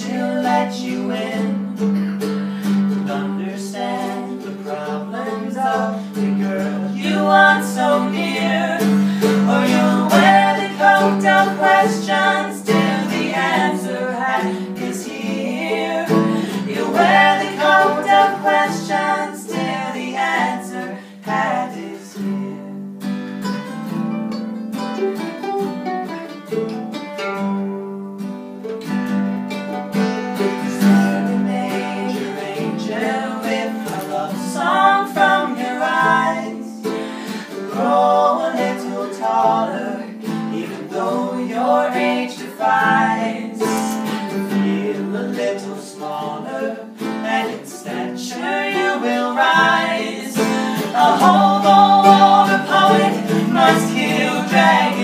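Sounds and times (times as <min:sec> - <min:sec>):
strummed acoustic guitar chords: 0:00.0 - 0:21.9, 0:22.7 - 0:45.5, 0:46.1 - 0:55.0
mandolin picked melody: 0:00.0 - 0:55.0.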